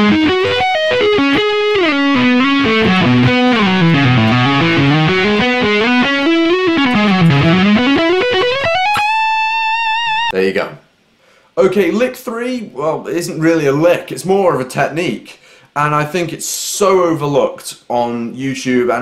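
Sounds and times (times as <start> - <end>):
distorted electric guitar arpeggios: 0.0 - 10.3.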